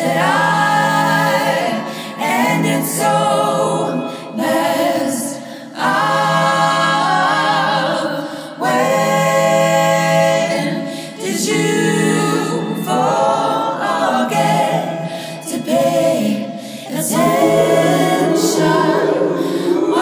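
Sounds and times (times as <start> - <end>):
choir singing a cappella: 0.0 - 20.0.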